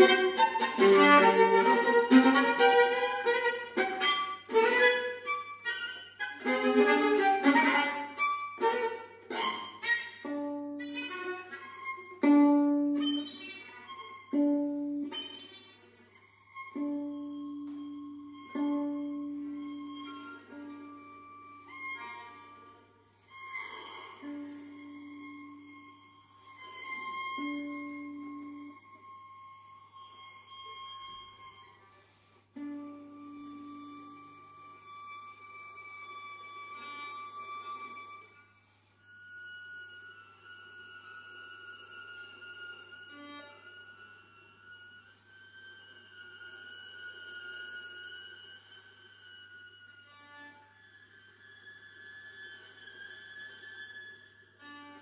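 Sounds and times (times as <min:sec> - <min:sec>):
soft viola tones: 0:00.0 - 0:55.0.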